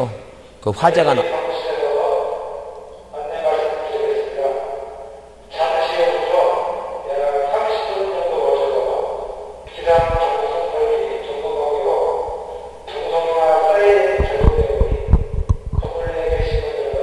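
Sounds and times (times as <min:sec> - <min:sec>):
recorded announcement voice: 0:00.0 - 0:17.0.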